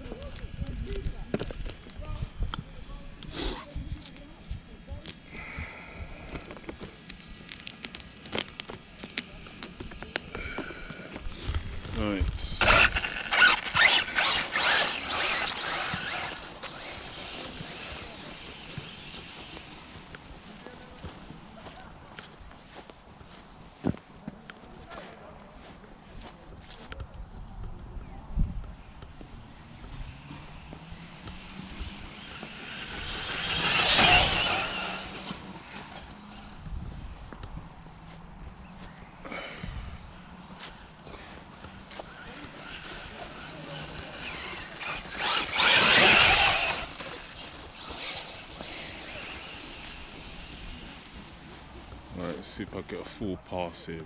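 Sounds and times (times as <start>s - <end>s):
rc truck motor whine: 11.8s - 21.1s, 29.7s - 36.9s, 41.6s - 51.5s
chassis rattle: 12.5s - 18.7s, 31.8s - 36.1s, 42.2s - 50.2s.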